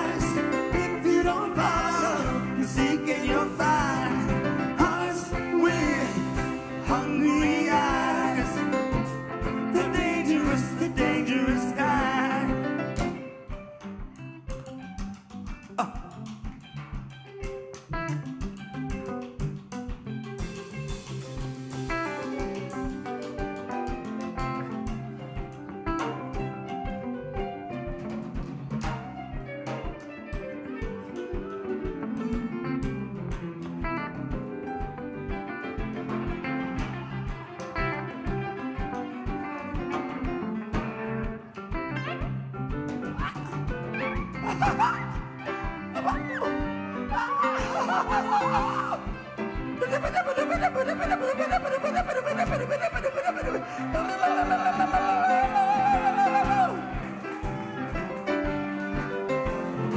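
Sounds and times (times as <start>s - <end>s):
steady drum beat: 0.0s - 13.3s, 39.0s - 59.9s
upright double bass: 0.0s - 13.3s
guitar: 0.0s - 59.9s
piano: 0.0s - 59.9s.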